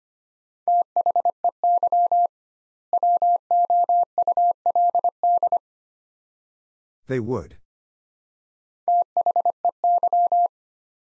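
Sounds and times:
morse code tone: 0:08.9 - 0:10.5.

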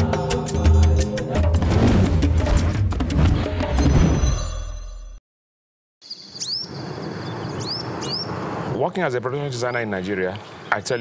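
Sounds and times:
bird chirps: 0:06.0 - 0:08.4.

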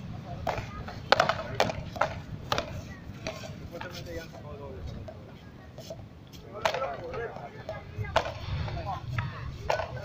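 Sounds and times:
faint voices: 0:00.0 - 0:10.0
ball tapping on concrete: 0:00.4 - 0:05.2, 0:05.8 - 0:08.4.

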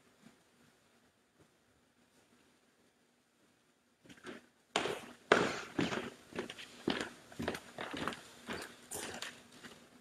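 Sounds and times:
footsteps: 0:04.0 - 0:10.0.

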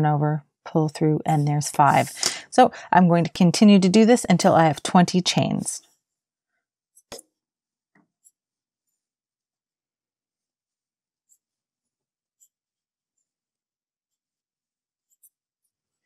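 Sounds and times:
crochet hook ticking and scratching: 0:11.2 - 0:12.6.

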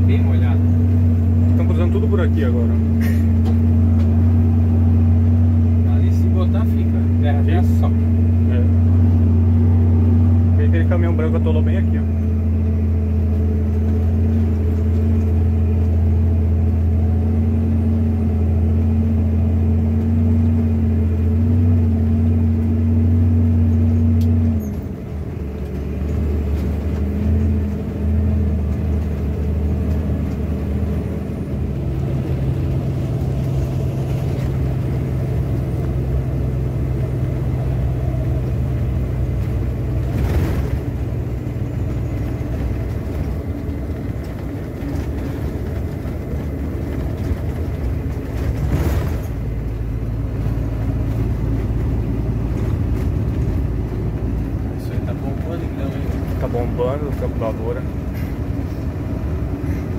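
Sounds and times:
diesel truck engine droning: 0:00.0 - 0:59.9.

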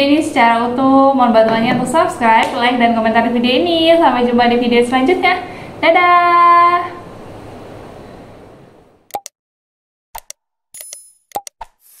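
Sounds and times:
short clicks and pops: 0:09.1 - 0:09.3.

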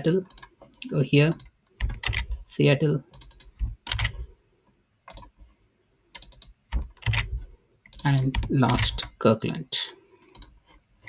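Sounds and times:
computer keyboard keystrokes: 0:00.3 - 0:00.6, 0:01.3 - 0:02.4, 0:03.1 - 0:04.2, 0:05.1 - 0:05.3, 0:06.1 - 0:09.1, 0:10.3 - 0:10.6.

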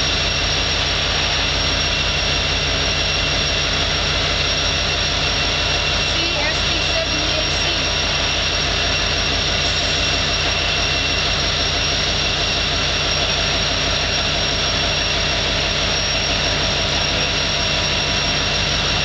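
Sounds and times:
diesel locomotive engine rumble: 0:00.0 - 0:19.0
high-pitched whine: 0:00.0 - 0:19.0.

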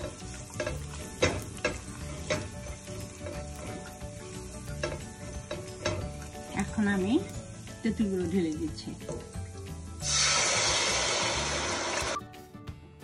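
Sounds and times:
spatula scraping and knocking pot: 0:00.0 - 0:07.7
garlic sizzling in hot oil: 0:00.0 - 0:12.2.

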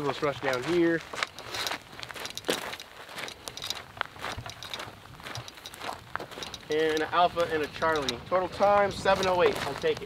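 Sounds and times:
footsteps on dry dirt: 0:00.0 - 0:10.0.

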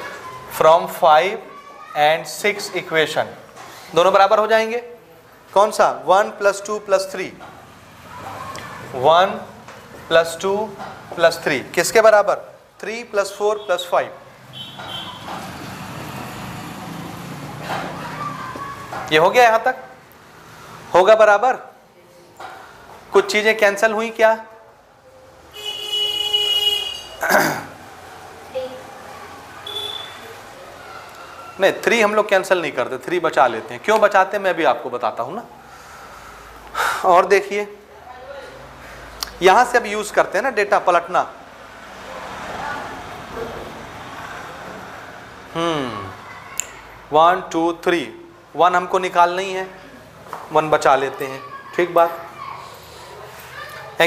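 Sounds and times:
steady background noise: 0:00.0 - 0:54.0.

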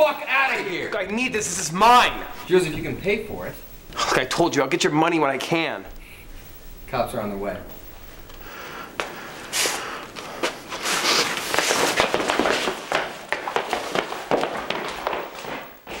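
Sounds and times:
shuffling footsteps: 0:07.7 - 0:16.0.

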